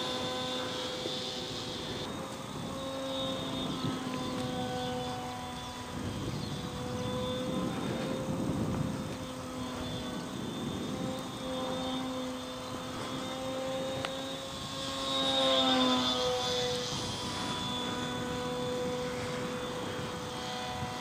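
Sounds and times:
model plane propeller motor humming: 0:00.0 - 0:21.0.

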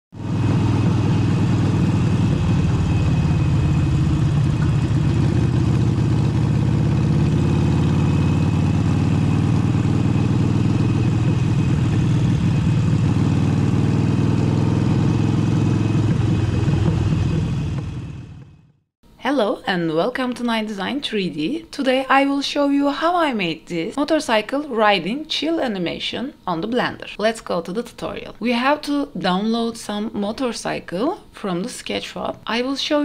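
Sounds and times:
motorcycle engine cruising: 0:00.2 - 0:18.9.

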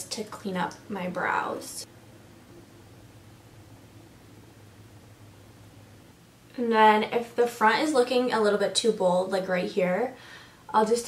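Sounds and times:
low hum: 0:00.0 - 0:08.0
faint steady hiss: 0:00.0 - 0:11.0.

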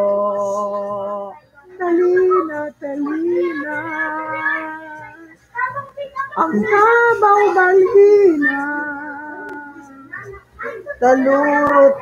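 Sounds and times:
person singing unaccompanied: 0:00.0 - 0:12.0.

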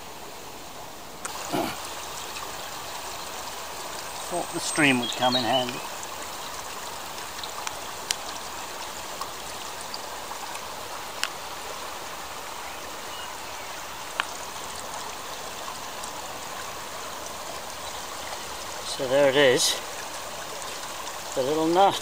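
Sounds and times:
shallow stream running: 0:00.0 - 0:22.0.

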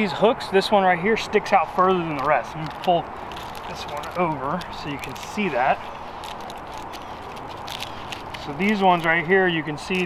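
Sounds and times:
strap and hook scraping bark: 0:01.2 - 0:10.0.

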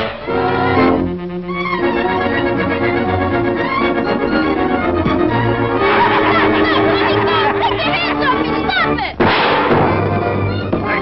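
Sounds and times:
music score: 0:00.0 - 0:11.0
loud bang: 0:09.2 - 0:10.2.

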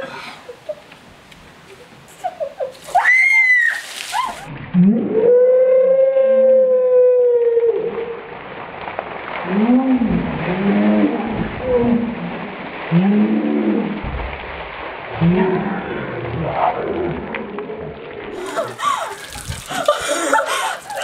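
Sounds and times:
water splashing: 0:00.0 - 0:05.1, 0:07.5 - 0:21.0.

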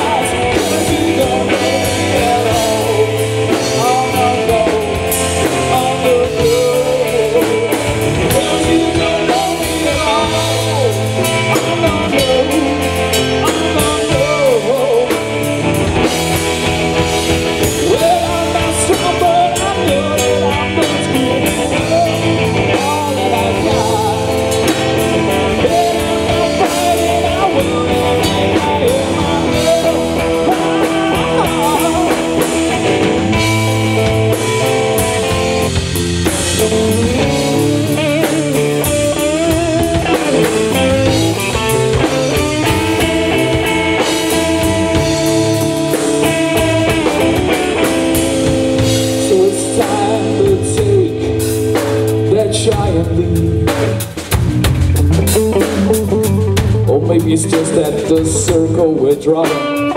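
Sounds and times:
drum kit: 0:00.0 - 0:59.9
electric bass: 0:00.0 - 0:59.9
electric guitar with bent notes: 0:00.0 - 0:59.9.

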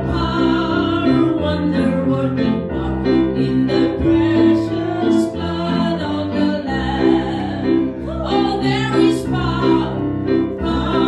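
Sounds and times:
group singing worship song: 0:00.0 - 0:11.0
instrumental accompaniment with bass: 0:00.0 - 0:11.0.

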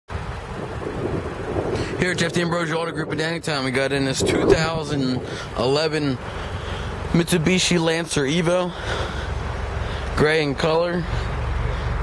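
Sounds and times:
wind buffeting microphone: 0:00.1 - 0:07.6.

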